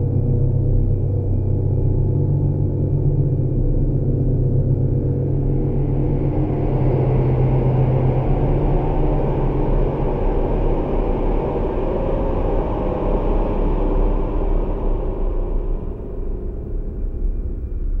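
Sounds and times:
low rumbling drone: 0.0 - 18.0.

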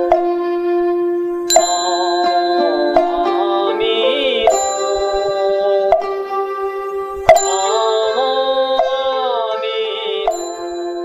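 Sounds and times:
struck bell tones ringing: 1.5 - 6.2, 7.3 - 8.6, 10.3 - 11.0.

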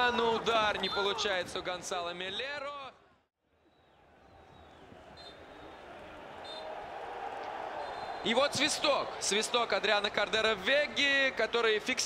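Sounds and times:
voices in empty stadium: 0.0 - 12.0
referee's whistle: 0.8 - 1.2, 5.2 - 5.8, 6.4 - 6.7, 7.8 - 8.3.

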